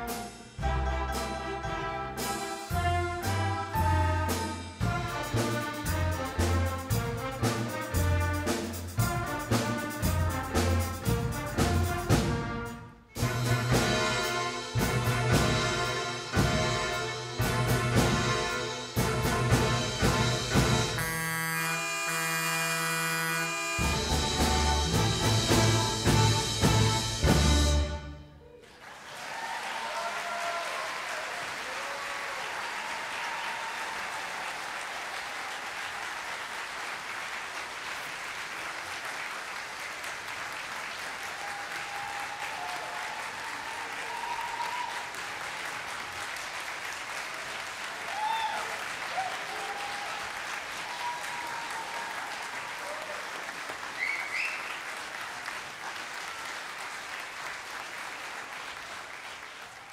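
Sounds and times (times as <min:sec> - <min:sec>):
people shouting and cheering: 0:28.4 - 0:35.6, 0:41.2 - 0:45.3, 0:48.0 - 0:54.6
audience applauding: 0:28.4 - 0:59.9.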